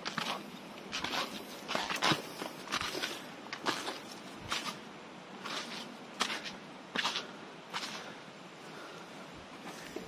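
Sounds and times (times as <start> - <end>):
footsteps on dirt and dry leaves: 0.0 - 8.0.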